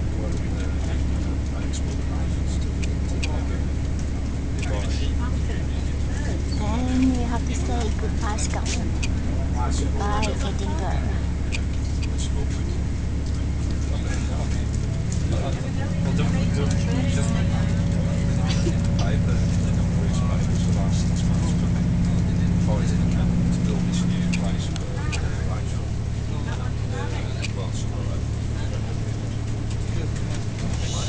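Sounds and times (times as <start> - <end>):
train hum: 0.0 - 31.0
train low drone: 0.0 - 31.0.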